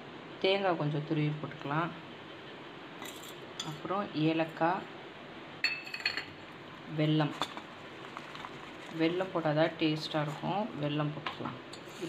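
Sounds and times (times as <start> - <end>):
glass clinking on steel bowl: 5.6 - 6.4.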